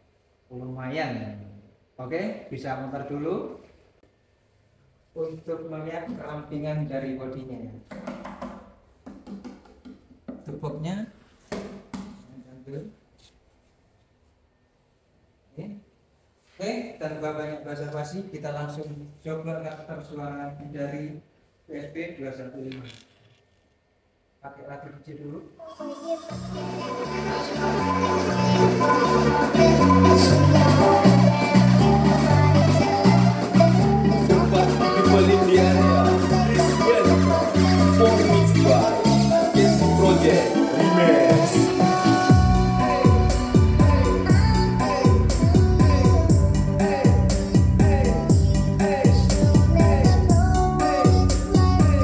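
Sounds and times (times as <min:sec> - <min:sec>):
knocks on wooden speaker cabinet: 0:07.9 - 0:10.4
music with strong bass line: 0:26.3 - 0:52.0.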